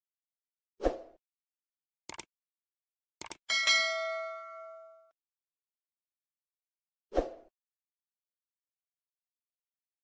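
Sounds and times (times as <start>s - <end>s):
double mouse click: 2.1s - 2.3s, 3.2s - 3.4s
notification bell dinging: 3.5s - 5.1s.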